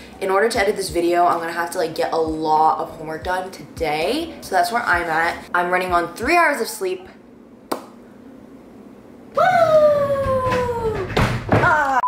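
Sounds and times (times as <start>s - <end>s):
high-pitched descending cry: 9.4s - 11.1s.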